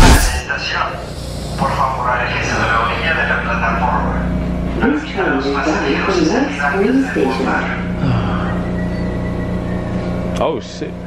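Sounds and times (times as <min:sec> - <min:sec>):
train car running hum: 0:00.0 - 0:11.0.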